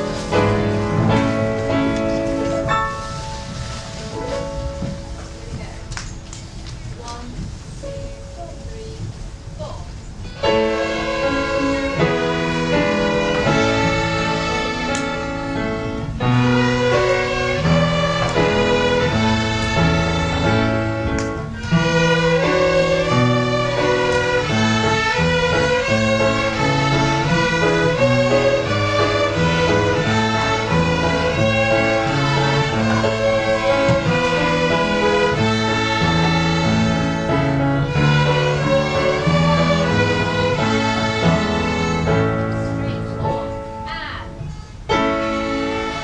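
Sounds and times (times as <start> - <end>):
violins and guitars playing: 10.4 - 43.0, 44.9 - 46.0.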